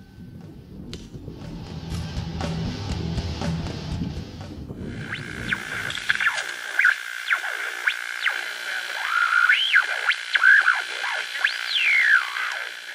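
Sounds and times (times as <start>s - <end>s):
steady high tone: 0.0s - 12.9s
warbling synthesizer pitch glides: 0.0s - 12.9s.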